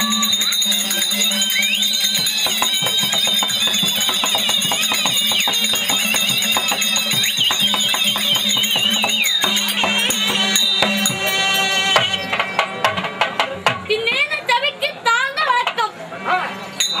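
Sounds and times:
shrill wind instrument melody: 0.0s - 13.0s
drums beating quick rhythm: 0.0s - 14.3s
harmonium drone: 0.0s - 14.4s.

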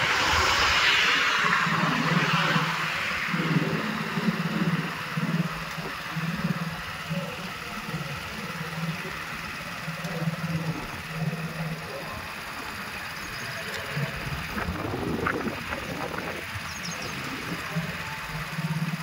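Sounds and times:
vehicle engine running: 0.0s - 19.0s.

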